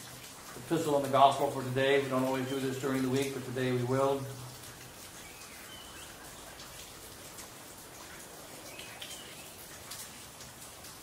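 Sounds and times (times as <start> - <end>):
dripping ticks: 0.0 - 11.0
light rain: 0.0 - 11.0
bird chirps: 5.2 - 6.2.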